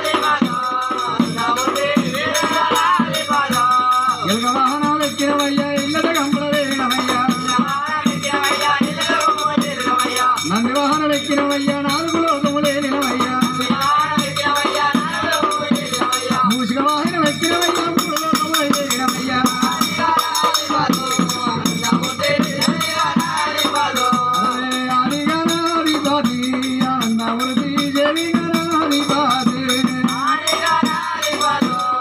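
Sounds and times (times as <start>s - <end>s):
barrel drum beat: 0.0s - 32.0s
jingling hand percussion: 0.0s - 32.0s
man singing: 0.0s - 32.0s.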